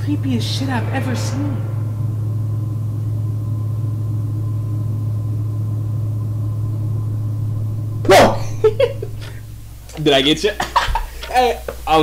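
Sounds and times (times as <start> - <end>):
deep low drone: 0.0 - 11.9.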